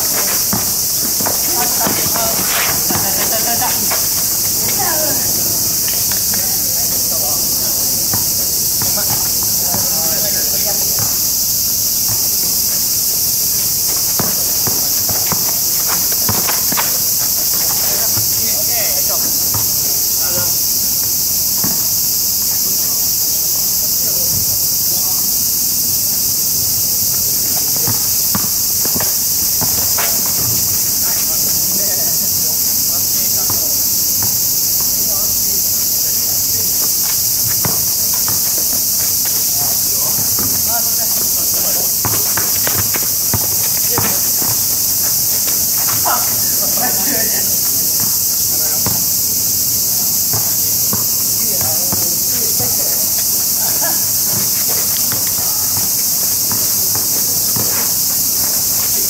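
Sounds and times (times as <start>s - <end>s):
faint voices: 0.0s - 49.4s, 50.0s - 59.0s
basketball bouncing on asphalt: 0.0s - 59.0s
cicadas chorus: 0.0s - 59.0s.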